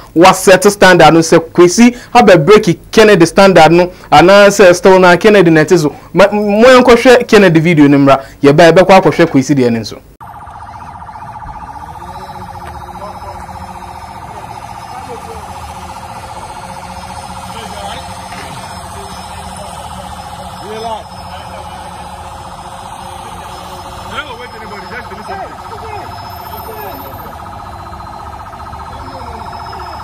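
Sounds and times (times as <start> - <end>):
vehicle siren warbling: 10.2 - 30.0
faint voices calling out: 10.9 - 30.0.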